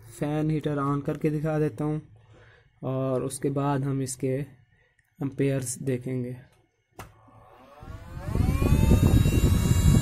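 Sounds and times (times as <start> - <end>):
cooling fan whining and whirring: 7.0 - 10.0.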